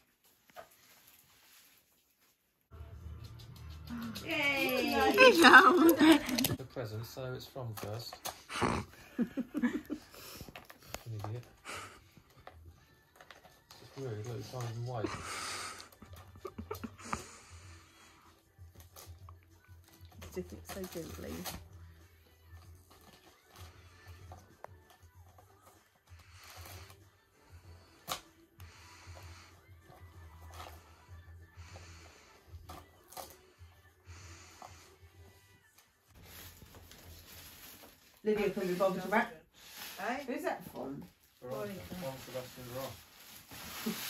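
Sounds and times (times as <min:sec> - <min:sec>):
wrapping paper rustling: 0:36.1 - 0:44.0.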